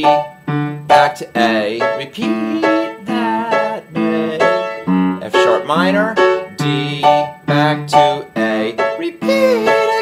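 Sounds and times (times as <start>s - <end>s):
upright piano playing chords: 0.0s - 10.0s.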